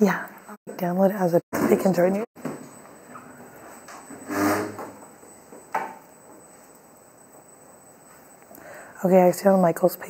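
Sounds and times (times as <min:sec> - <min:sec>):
desk chair scraping on floor: 0:04.1 - 0:05.0.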